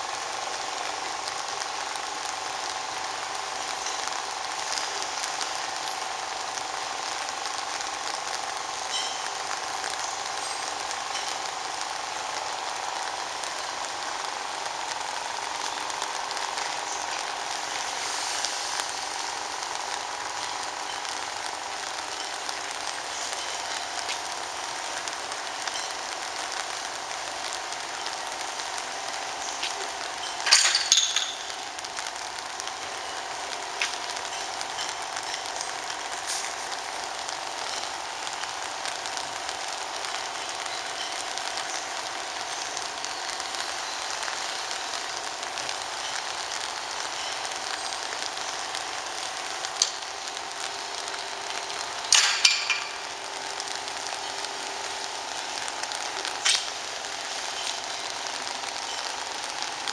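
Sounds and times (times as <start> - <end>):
hiss of air: 11.9 - 30.4.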